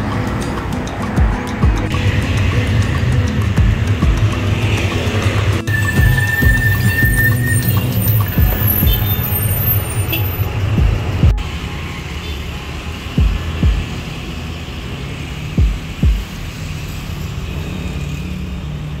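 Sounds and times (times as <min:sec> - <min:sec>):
short low thumps: 0:15.6 - 0:16.3.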